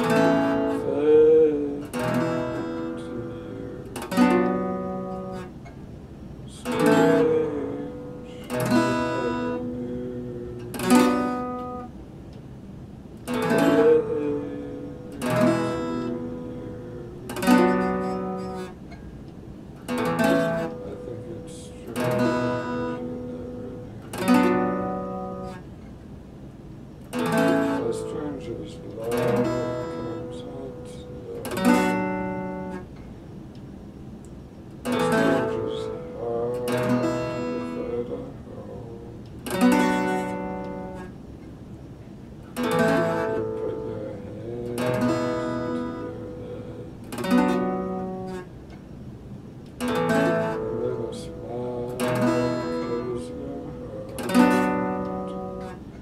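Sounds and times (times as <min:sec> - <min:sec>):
acoustic guitar chords strummed: 0:00.0 - 0:56.0.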